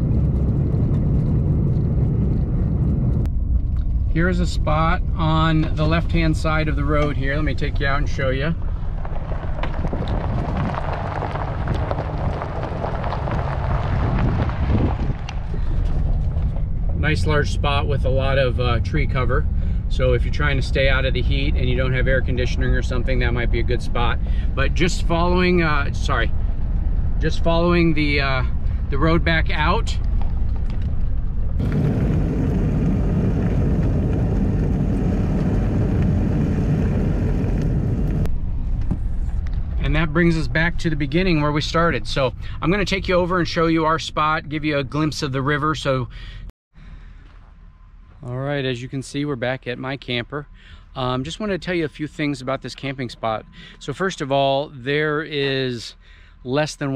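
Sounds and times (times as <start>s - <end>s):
gravel crunching under tyres: 0.0s - 46.0s, 46.8s - 50.2s
truck engine and road rumble: 0.0s - 56.9s.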